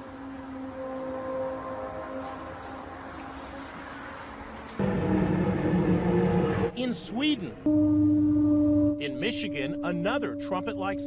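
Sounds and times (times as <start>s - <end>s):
low horn-like drone: 0.0s - 6.8s, 7.6s - 11.0s.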